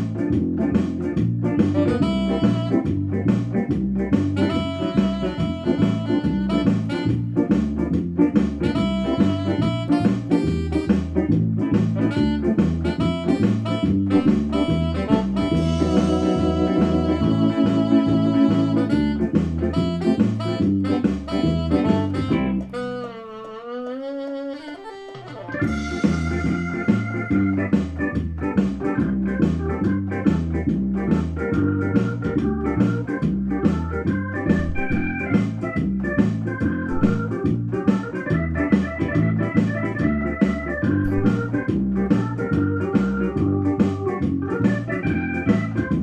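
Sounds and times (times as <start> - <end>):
jazzy synthesizer keyboard: 0.0 - 46.0
synth bass line: 34.6 - 35.5, 36.9 - 37.4, 41.0 - 41.7.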